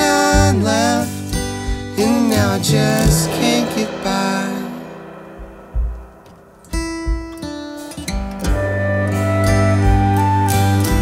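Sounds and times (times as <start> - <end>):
plucked guitar notes: 1.2 - 11.0.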